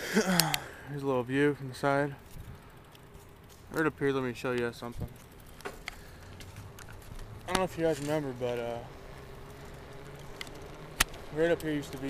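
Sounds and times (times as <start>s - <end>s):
bicycle ticks and clicks: 0.1s - 12.0s
tyre and wind rumble: 2.2s - 3.5s.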